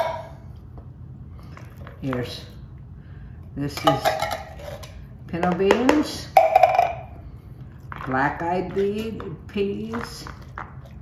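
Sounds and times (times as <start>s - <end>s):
cans scraping and handling: 3.9s - 5.1s.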